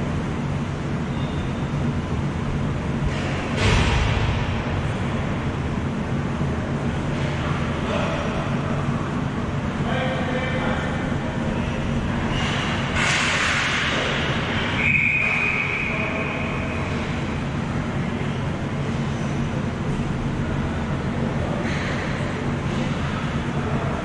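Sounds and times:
low arena hum: 0.0 - 24.0
distant players' voices: 13.8 - 24.0
referee's whistle blast: 14.8 - 16.2.

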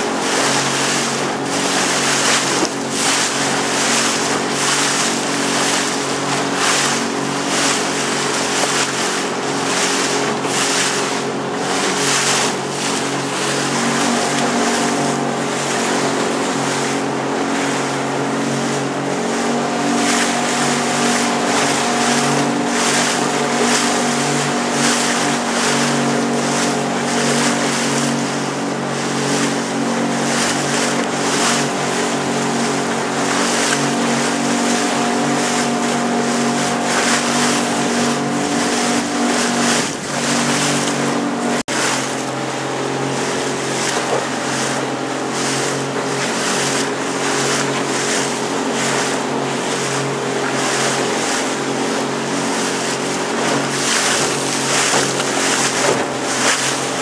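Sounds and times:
motorboat engine running: 0.0 - 57.0
water rushing: 0.0 - 57.0.

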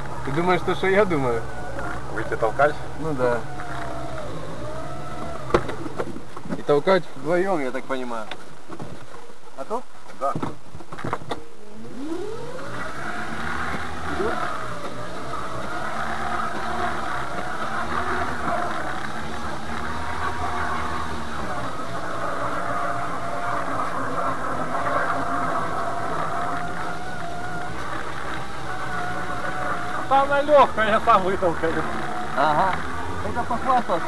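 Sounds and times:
electric motor whining: 0.0 - 8.3, 11.0 - 34.0.

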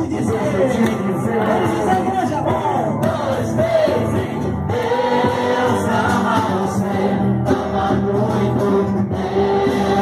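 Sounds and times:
crowd singing a religious song: 0.0 - 10.0.

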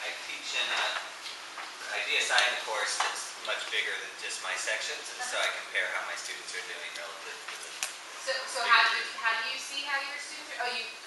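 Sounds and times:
people talking: 0.0 - 1.1, 1.8 - 11.0.

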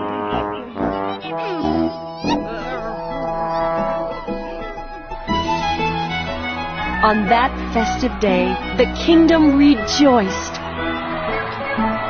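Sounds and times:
orchestral background music: 0.0 - 12.0.

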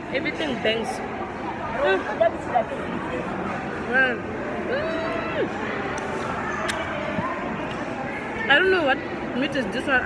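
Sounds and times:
diners chattering: 0.0 - 10.0.

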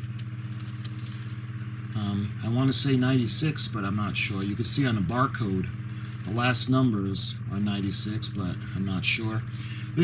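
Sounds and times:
low motor hum: 0.0 - 10.0.

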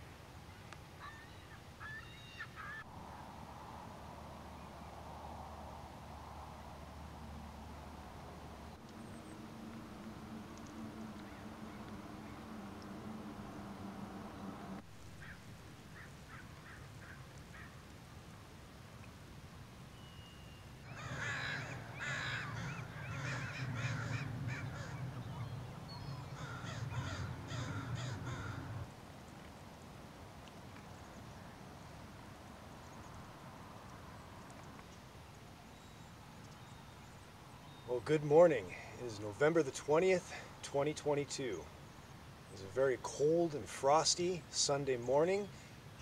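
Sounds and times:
crows cawing: 15.2 - 17.8, 20.9 - 28.9.

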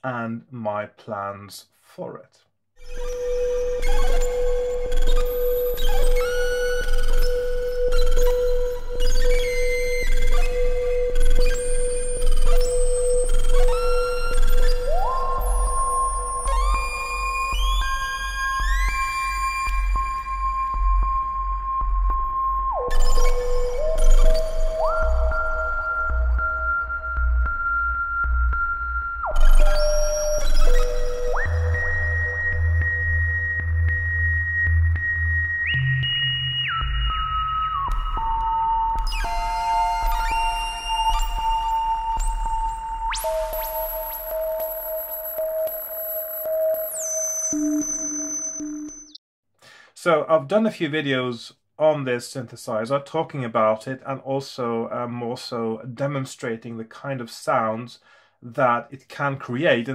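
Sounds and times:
synthesizer whistle-like gliding tones: 2.8 - 20.4, 22.8 - 49.2
synthesizer tones: 36.8 - 49.2.

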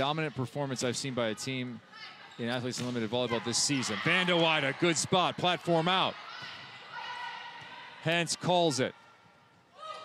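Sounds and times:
volleyball rally court sounds: 0.0 - 10.0.

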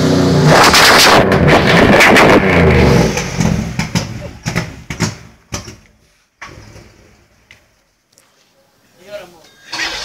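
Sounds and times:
car engine through noisy exhaust: 0.0 - 5.8.

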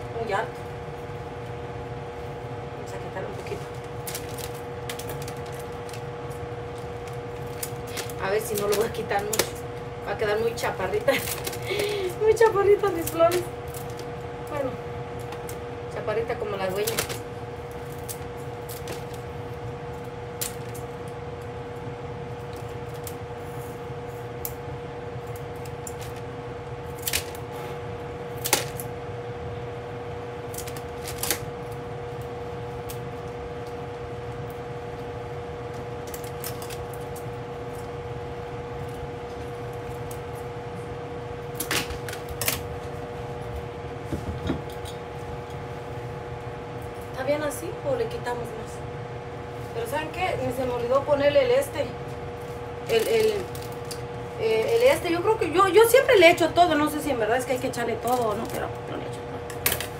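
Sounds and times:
steady hum: 0.0 - 59.9.

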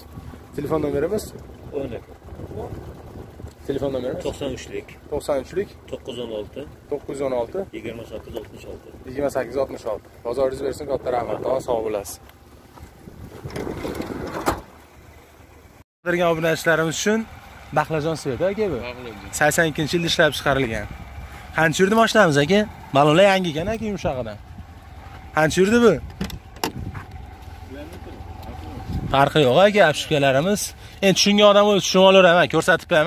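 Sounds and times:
wind rumble on microphone: 0.0 - 5.6, 10.0 - 15.2, 23.5 - 29.6
car door handle and latch clicks: 26.1 - 26.8.

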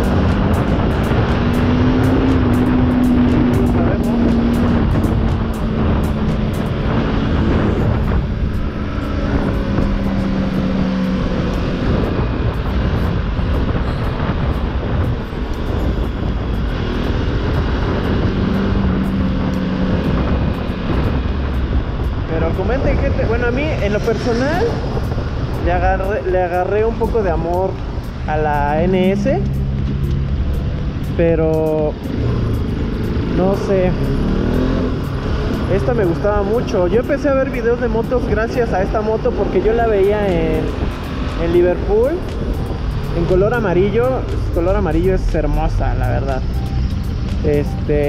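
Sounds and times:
motorcycle engine running: 0.0 - 48.0
wind rushing over microphone: 0.0 - 48.0.

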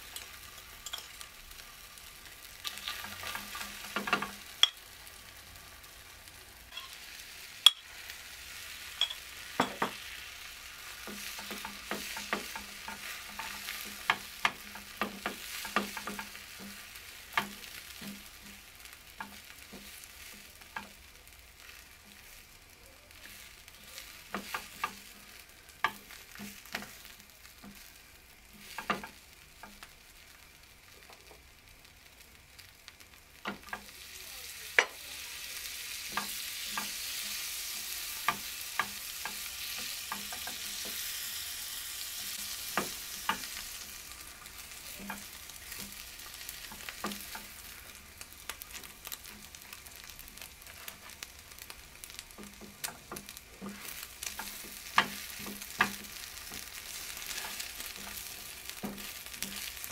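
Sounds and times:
eggs frying in butter: 0.0 - 59.9
spatula tapping a pan: 2.6 - 4.8, 6.7 - 7.0, 7.6 - 7.9, 9.0 - 10.2, 10.8 - 21.0, 24.2 - 27.9, 28.5 - 29.9, 33.4 - 34.0, 34.8 - 35.0, 36.0 - 41.0, 42.4 - 47.8, 50.8 - 59.9.

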